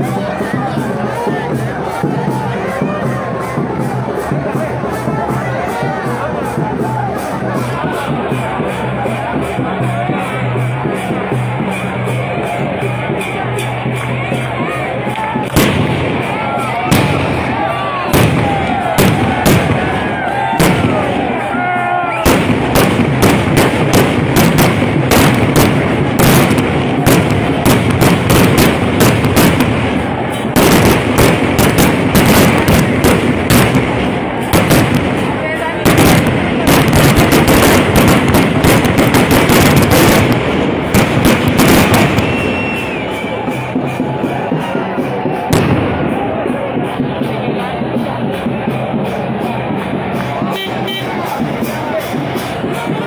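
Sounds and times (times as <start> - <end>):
voices shouting: 0.0 - 33.8
rapid sharp bangs: 15.5 - 21.4, 22.2 - 42.9.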